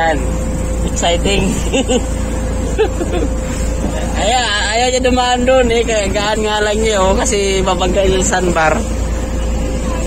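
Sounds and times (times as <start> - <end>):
boat motor hum with whine: 0.0 - 10.0
low rumble: 0.0 - 10.0.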